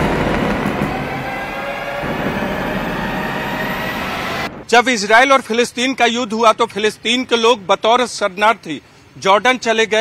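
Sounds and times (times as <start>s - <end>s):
explosion rumbling roar: 0.0s - 4.7s.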